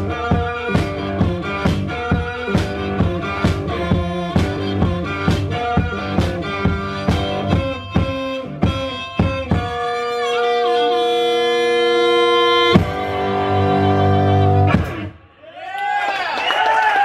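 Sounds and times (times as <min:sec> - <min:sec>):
harmonica: 0:00.0 - 0:15.2
electric guitar chords: 0:00.0 - 0:15.4
drum and cymbal hits: 0:12.7 - 0:13.3, 0:14.7 - 0:15.2.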